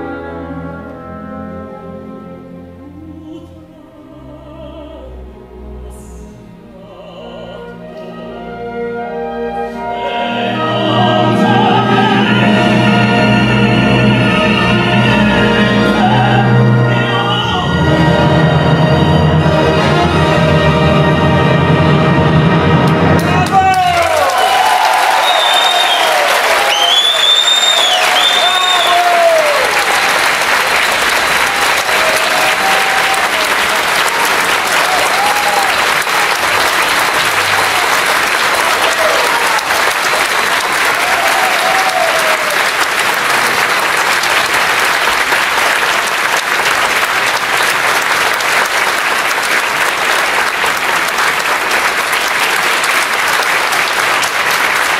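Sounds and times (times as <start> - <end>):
audience applauding: 22.8 - 54.9
people cheering: 23.2 - 54.9.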